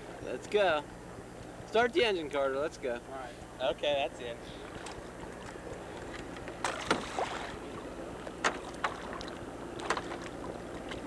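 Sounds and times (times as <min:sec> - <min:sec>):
boat engine idling: 0:00.0 - 0:11.0
water splashes: 0:04.5 - 0:11.0.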